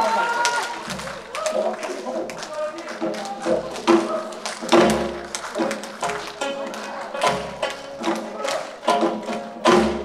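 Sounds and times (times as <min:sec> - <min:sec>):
plucked zither strings: 0:04.7 - 0:10.0.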